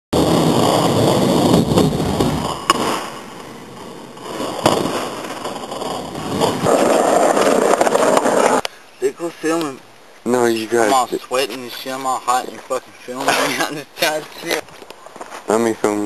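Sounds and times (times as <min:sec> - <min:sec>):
skateboard wheels rolling on concrete: 0:00.1 - 0:16.0
skateboard landing smack: 0:02.2 - 0:03.1, 0:04.6 - 0:05.7
skateboard clack: 0:02.2 - 0:03.5, 0:04.4 - 0:08.6.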